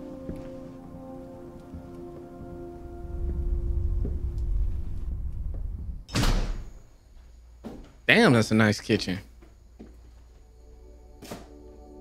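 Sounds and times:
held drone of steady tones: 0.0 - 6.1, 10.3 - 12.0
deep rumble: 2.8 - 6.8.

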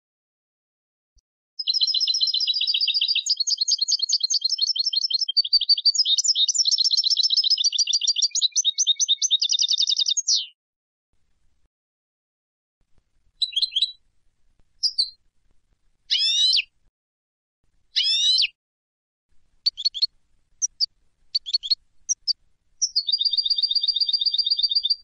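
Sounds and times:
finch twittering song: 1.6 - 10.6, 13.4 - 14.0, 14.8 - 15.2, 16.1 - 16.7, 18.0 - 18.6, 19.6 - 25.0
rapid bird trill: 1.6 - 10.6, 13.4 - 14.0, 14.8 - 15.2, 16.1 - 16.7, 18.0 - 18.6, 19.6 - 25.0.

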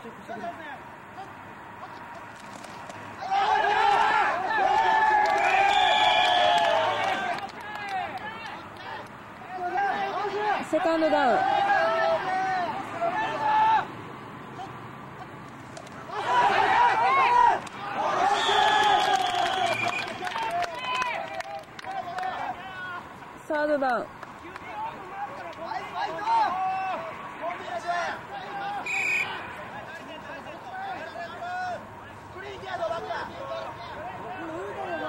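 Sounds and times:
general chatter: 0.0 - 35.0
people calling and shouting: 0.0 - 35.0.

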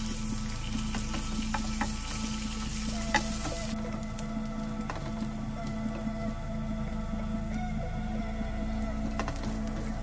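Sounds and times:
ginger sizzling in oil: 0.0 - 3.8.

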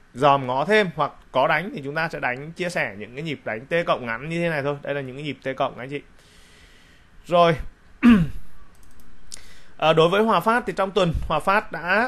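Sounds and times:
man speaking: 0.1 - 6.1, 7.2 - 8.3, 9.8 - 12.0
computer mouse clicks: 8.7 - 9.5.

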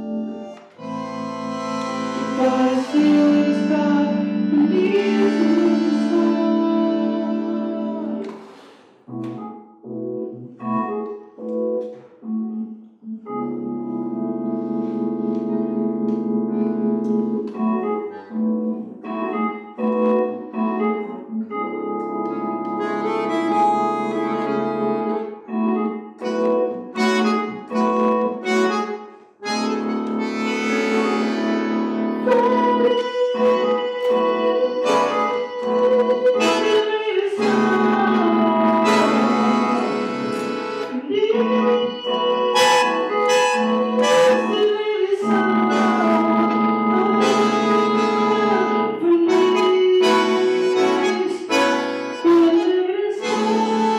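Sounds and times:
bandoneon and keyboard playing: 0.0 - 53.9.

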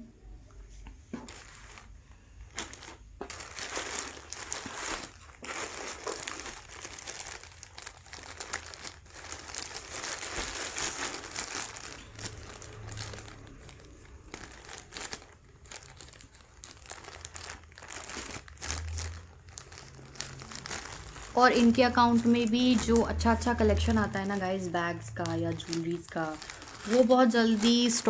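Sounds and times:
plastic mailer bag crinkling: 1.2 - 28.0.

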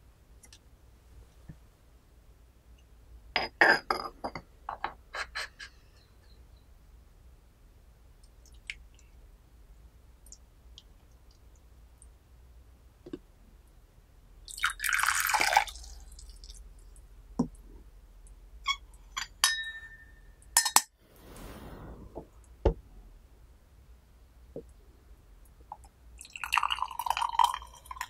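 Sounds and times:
liquid pouring into a bowl: 14.5 - 16.6, 26.2 - 28.0.

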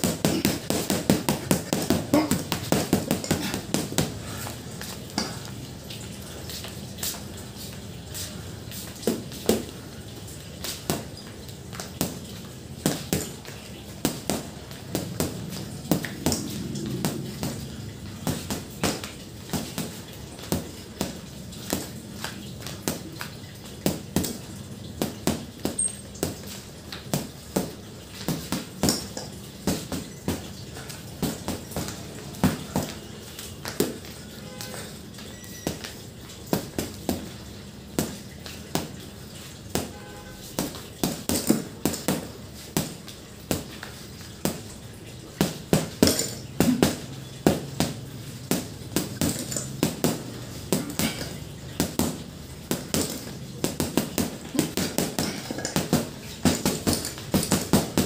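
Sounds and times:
gloves punching heavy bag: 0.0 - 5.4, 12.8 - 23.2, 25.0 - 34.9, 39.7 - 44.7, 45.3 - 58.0.

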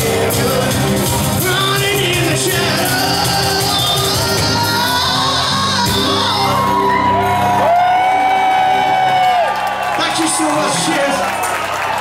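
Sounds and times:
live rock band playing: 0.0 - 12.0
singer holding long note: 2.4 - 9.1
crowd whooping and shouting: 3.5 - 12.0.

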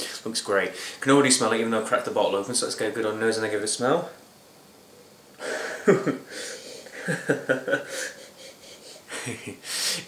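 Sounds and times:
man chuckling: 5.4 - 10.0
man sniffing through nose: 7.9 - 10.0.

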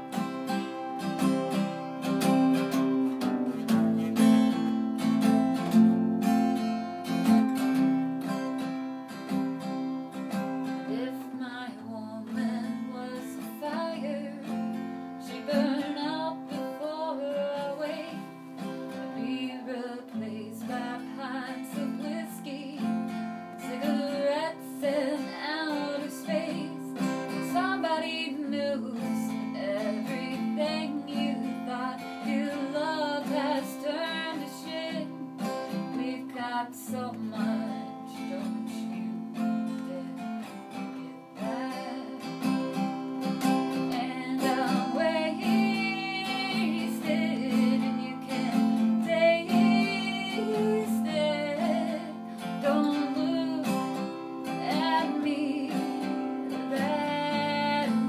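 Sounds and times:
strummed acoustic guitar: 0.0 - 58.0
woman singing: 9.3 - 58.0.

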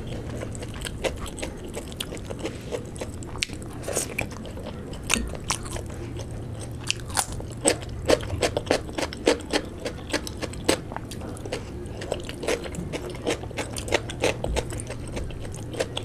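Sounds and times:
chewing soft food: 0.0 - 16.0
crunching raw cucumber: 0.0 - 16.0.

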